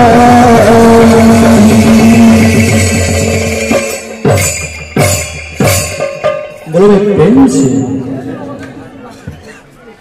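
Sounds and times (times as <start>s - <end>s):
fast drum strokes: 0.1s - 7.7s.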